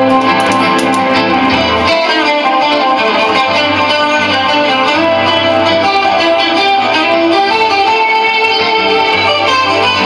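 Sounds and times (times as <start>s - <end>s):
acoustic guitar strumming: 0.0s - 10.0s
harmonica: 1.4s - 10.0s.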